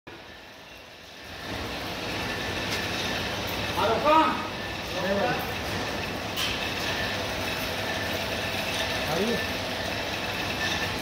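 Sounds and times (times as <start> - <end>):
machinery running: 0.1 - 11.0.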